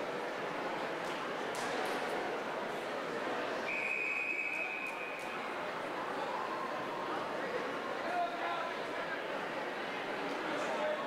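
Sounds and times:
crowd chatter: 0:00.0 - 0:11.0
long whistle blast: 0:03.7 - 0:05.2.

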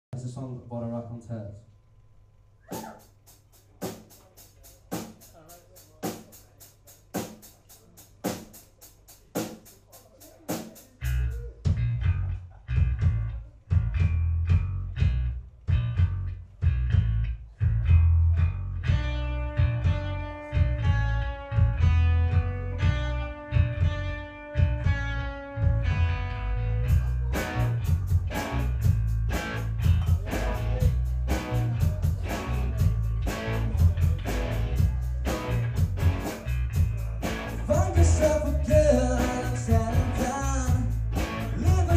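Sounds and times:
drum beat: 0:02.7 - 0:12.1, 0:26.9 - 0:41.9
electric bass: 0:11.0 - 0:41.9
guitar chords: 0:11.1 - 0:41.9.

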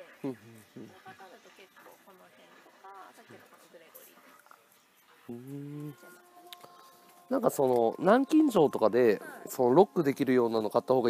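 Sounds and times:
quiet conversational speech: 0:00.0 - 0:11.0.

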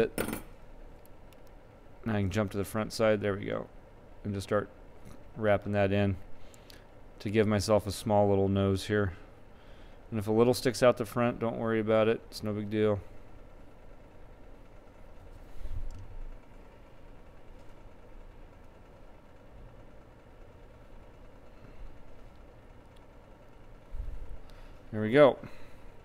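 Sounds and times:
steady background hum: 0:00.0 - 0:26.0.

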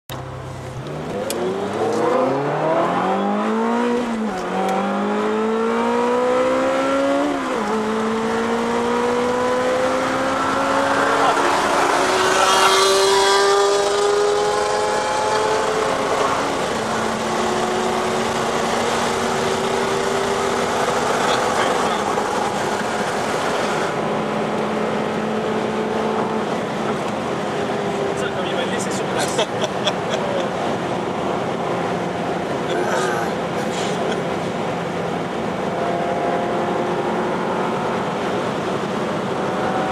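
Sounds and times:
car engine accelerating through gears: 0:00.1 - 0:39.9.

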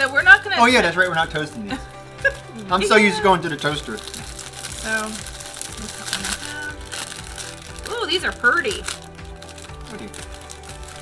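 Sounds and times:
foil wrappers crinkling: 0:00.0 - 0:11.0
quiet background music: 0:00.0 - 0:11.0.

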